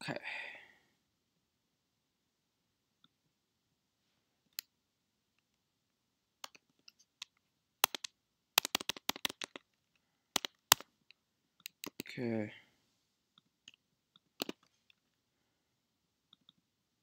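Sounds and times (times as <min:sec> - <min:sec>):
computer keyboard keys clicking: 0:06.4 - 0:09.7, 0:10.4 - 0:10.9, 0:11.6 - 0:12.1.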